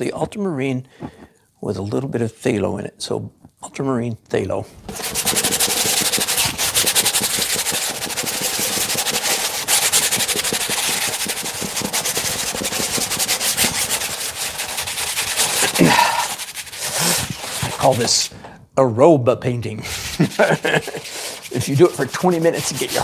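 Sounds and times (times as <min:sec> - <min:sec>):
brush scrubbing on canvas: 0:04.9 - 0:18.3, 0:19.8 - 0:23.0.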